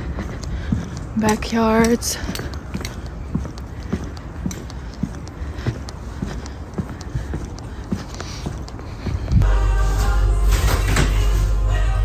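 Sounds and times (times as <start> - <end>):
footsteps on pavement: 0.0 - 9.4.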